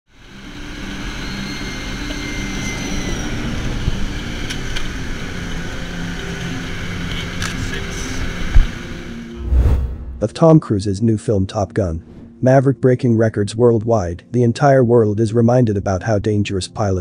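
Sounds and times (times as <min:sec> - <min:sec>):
high whine: 0:00.2 - 0:10.4.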